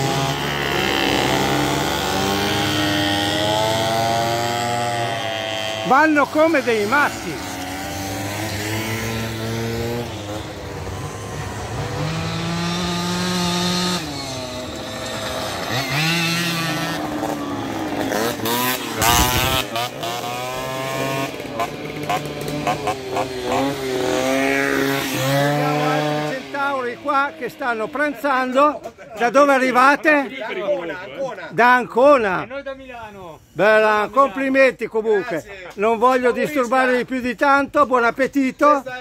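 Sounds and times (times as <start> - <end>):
moped engines revving: 0.0 - 30.9.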